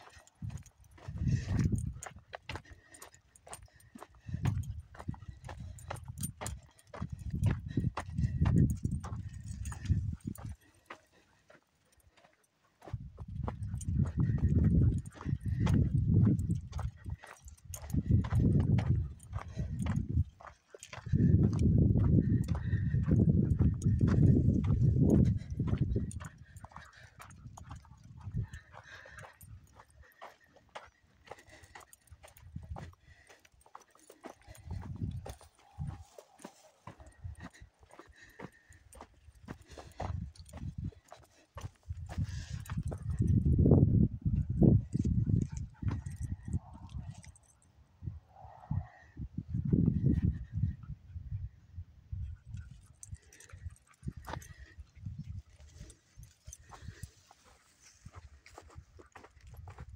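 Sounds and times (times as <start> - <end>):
footsteps on dry dirt: 0.0 - 43.5, 44.5 - 47.6, 52.6 - 59.9
wind buffeting microphone: 0.2 - 2.8, 3.4 - 10.7, 12.8 - 30.4, 31.2 - 59.9.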